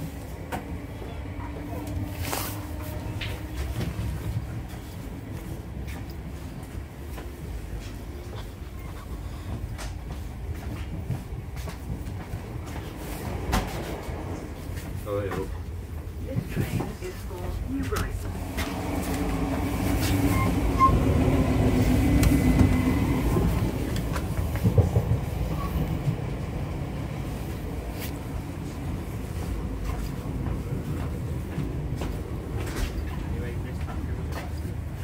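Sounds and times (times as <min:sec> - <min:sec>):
train hum: 0:00.0 - 0:35.0
train wheels rumbling on track: 0:00.0 - 0:35.0.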